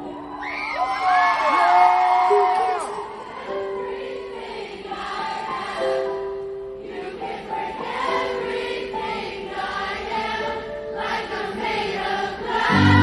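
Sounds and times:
concert crowd singing along: 2.6 - 13.0.

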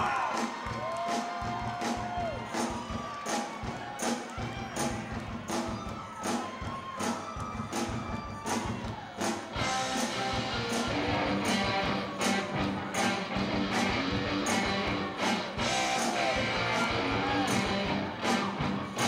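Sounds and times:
drums keeping a beat: 0.0 - 19.0
rock band playing: 0.0 - 19.0.

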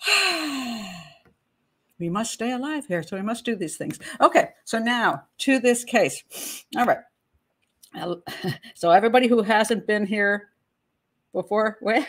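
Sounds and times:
woman sighing: 0.0 - 1.3.

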